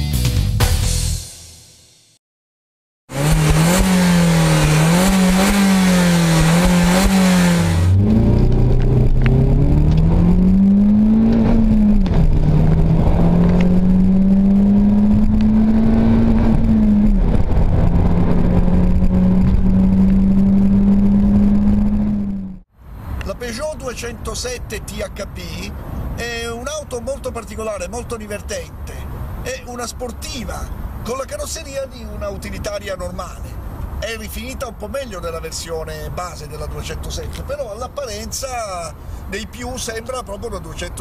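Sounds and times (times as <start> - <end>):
car engine revving: 3.1 - 22.6.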